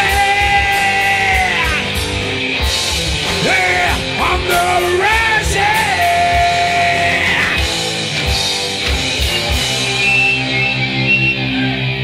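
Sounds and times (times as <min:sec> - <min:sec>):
man singing into a microphone: 0:00.0 - 0:02.0, 0:03.4 - 0:07.7
bass guitar: 0:00.0 - 0:12.0
drums with kick-drum beat: 0:00.0 - 0:12.0
electric guitar: 0:00.0 - 0:12.0.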